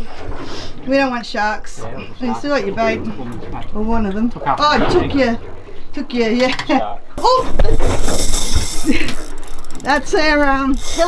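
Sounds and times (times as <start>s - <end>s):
fishing reel cranking: 8.0s - 11.0s.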